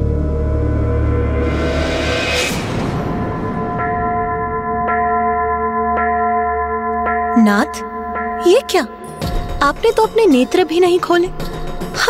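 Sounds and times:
ringing bell tone: 3.4s - 11.8s.

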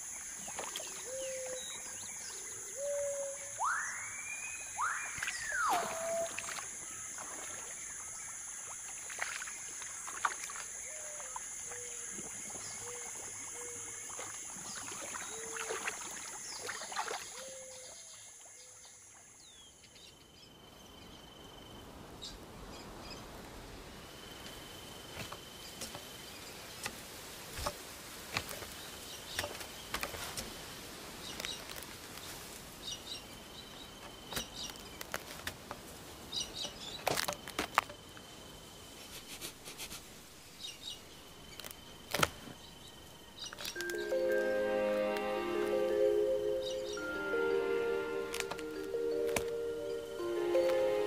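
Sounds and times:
high insect drone: 0.0s - 18.1s
whistled bird calls: 2.8s - 6.7s
faint steady high tone: 43.8s - 51.0s.

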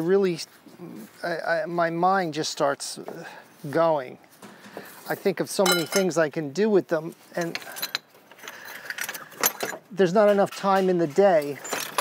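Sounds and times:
scrap metal parts clinking: 5.6s - 6.2s, 7.3s - 10.6s, 11.4s - 12.0s.

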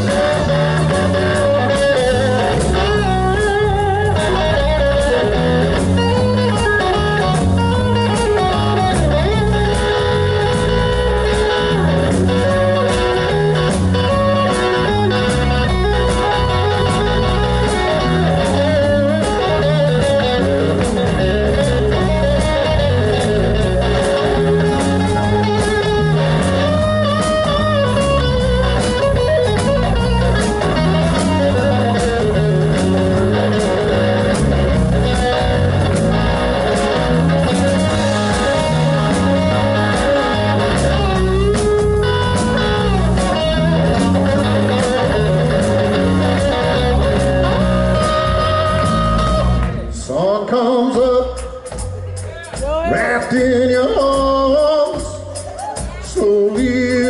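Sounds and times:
steady drum beat: 0.0s - 50.0s, 50.9s - 57.0s
electric guitar lead: 0.0s - 50.5s
electric bass: 0.0s - 57.0s.

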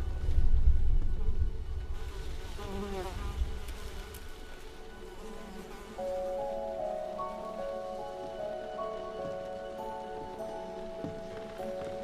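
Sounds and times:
fly buzzing: 2.5s - 8.6s.

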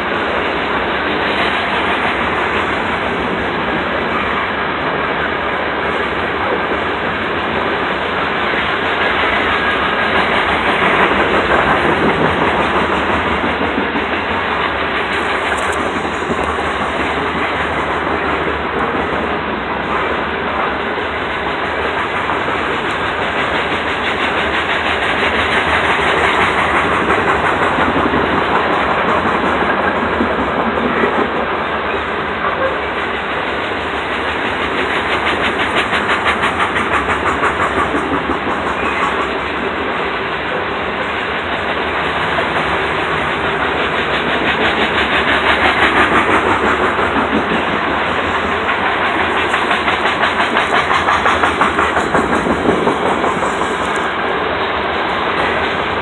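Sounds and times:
train wheels rumbling on rail: 0.0s - 56.0s
wheels clicking over rail joints: 40.4s - 54.2s.

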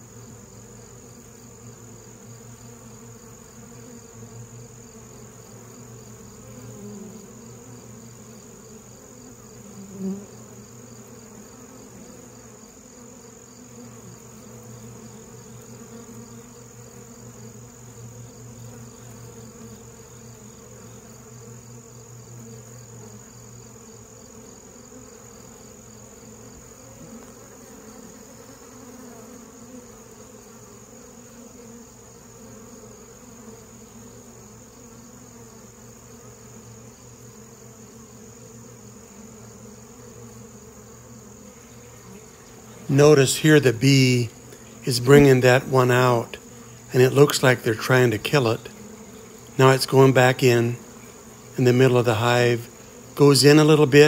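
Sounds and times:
honey bees buzzing: 0.0s - 54.0s.

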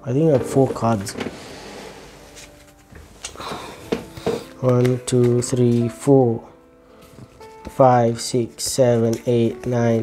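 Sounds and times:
rustling of handled cards: 2.1s - 6.2s, 7.0s - 10.0s.

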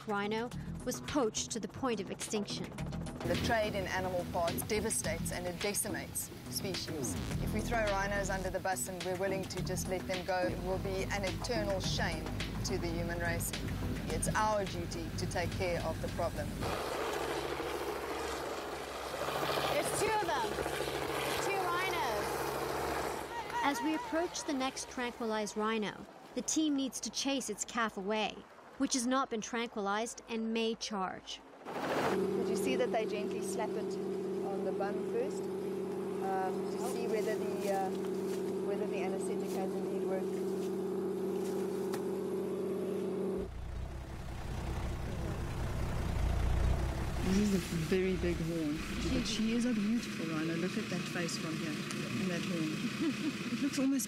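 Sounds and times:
vehicle engine running: 0.0s - 25.5s, 32.1s - 54.0s
voices calling out: 19.5s - 28.1s, 44.4s - 54.0s.

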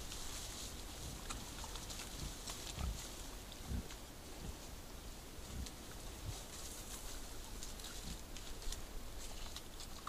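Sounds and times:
leaves and twigs crackling underfoot: 0.0s - 10.0s.

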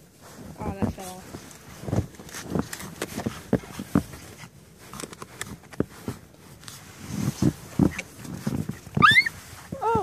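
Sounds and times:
shovel crunching and scraping snow: 0.1s - 10.0s.

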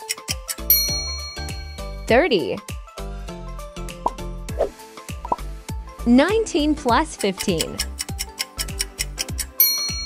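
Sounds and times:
background music: 0.0s - 10.0s
bright chime: 0.7s - 2.2s, 9.6s - 10.0s
timer ticking rapidly: 6.5s - 10.0s.

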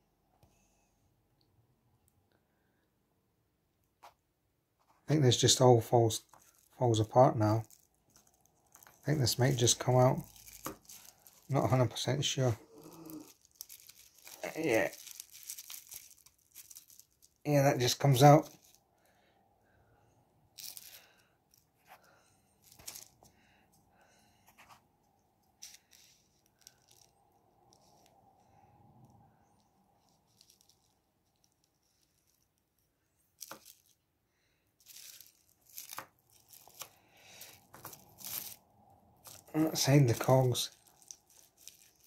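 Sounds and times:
small parts clicking and rustling: 6.1s - 18.8s, 20.5s - 23.8s, 25.4s - 34.0s, 34.6s - 42.0s.

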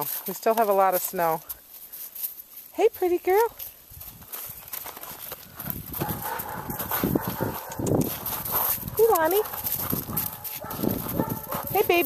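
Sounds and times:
footsteps crunching on snow: 0.0s - 12.0s.

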